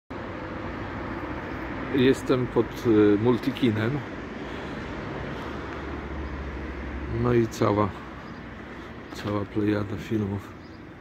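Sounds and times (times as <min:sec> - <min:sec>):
low city rumble: 0:00.1 - 0:11.0.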